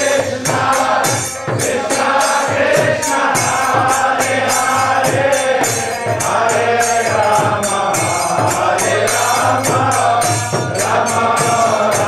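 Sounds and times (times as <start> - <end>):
drum strokes: 0.0 - 12.0
group of voices chanting: 0.0 - 12.0
hand cymbals clashing: 0.0 - 12.0.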